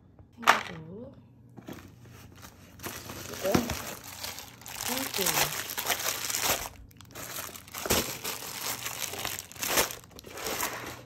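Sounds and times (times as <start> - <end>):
plastic packaging crinkling: 2.2 - 11.0.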